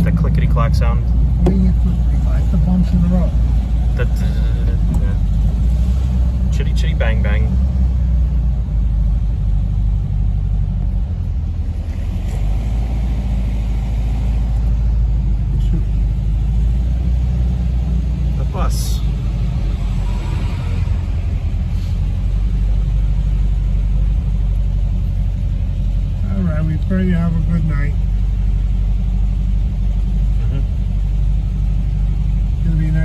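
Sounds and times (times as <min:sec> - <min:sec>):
road noise: 0:00.0 - 0:33.0
vehicle engine rumble: 0:00.0 - 0:33.0.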